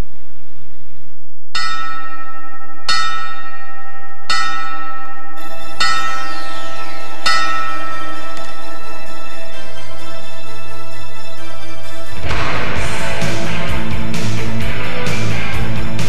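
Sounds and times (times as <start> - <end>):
low hum: 0.0 - 16.0
bell ringing: 1.6 - 13.2.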